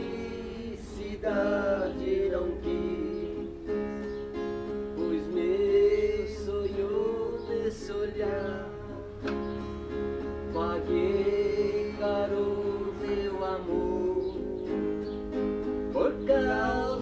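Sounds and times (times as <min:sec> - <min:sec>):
acoustic guitar strumming: 0:00.0 - 0:17.0
man singing long notes: 0:10.5 - 0:14.7.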